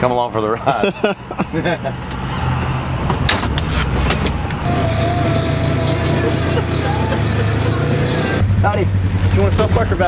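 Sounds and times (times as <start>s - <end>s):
utility vehicle engine running: 4.4s - 9.8s
steady high whine: 4.6s - 8.4s.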